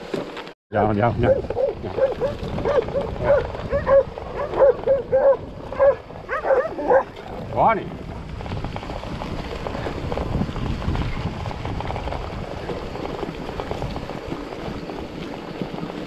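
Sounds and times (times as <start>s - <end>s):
bike tyres rolling over grass: 0.0s - 16.0s
dog barking: 1.2s - 7.1s.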